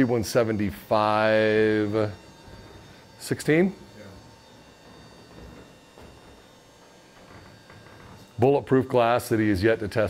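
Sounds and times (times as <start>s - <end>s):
thin electrical tones: 0.0s - 10.0s.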